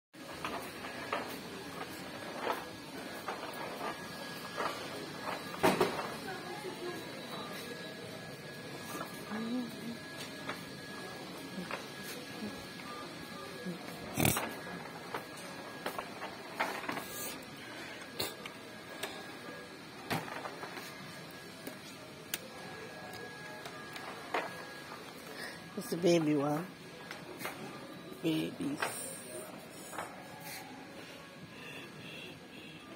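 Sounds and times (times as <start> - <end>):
steady hum: 0.2 - 32.8.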